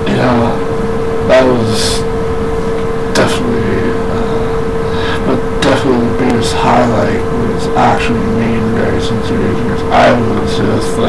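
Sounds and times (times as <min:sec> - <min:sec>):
breathy hiss: 0:00.0 - 0:11.0
high-pitched electronic hum: 0:00.0 - 0:11.0
man's short vocal sound: 0:03.2 - 0:08.4.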